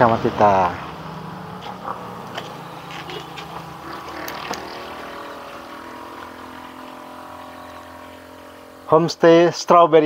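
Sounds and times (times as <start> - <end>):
motor humming: 0.8 - 9.4.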